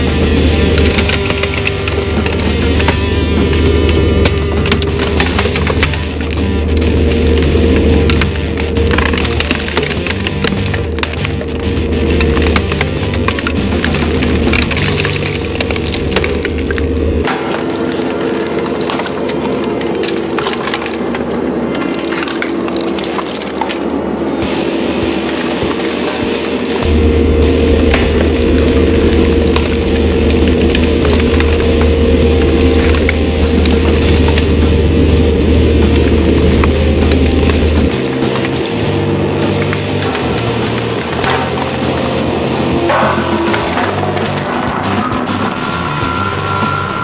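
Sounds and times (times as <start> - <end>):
plastic and glass cracking: 0.0 - 26.9, 27.8 - 47.0
road roller engine running: 0.0 - 47.0.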